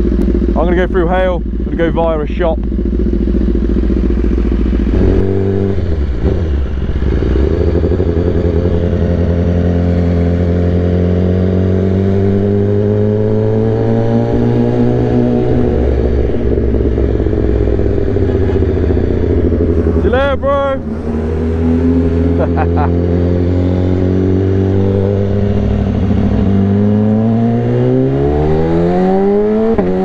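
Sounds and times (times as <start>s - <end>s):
motorcycle engine revving: 0.0s - 30.0s.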